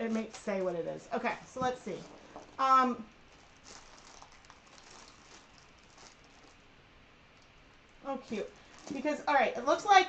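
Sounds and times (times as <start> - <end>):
package rustling and clicks: 3.3 - 6.6.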